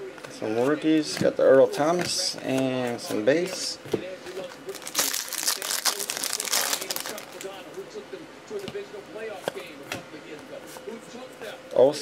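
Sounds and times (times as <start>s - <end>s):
cards rustling and clicking: 4.2s - 7.6s
foil wrapper crinkling and tearing: 4.4s - 7.6s.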